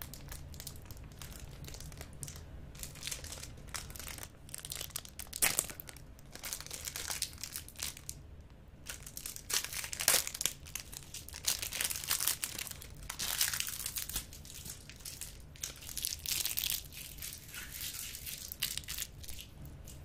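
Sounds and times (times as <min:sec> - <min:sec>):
plastic wrapper crinkling: 0:00.0 - 0:08.2, 0:08.8 - 0:20.0.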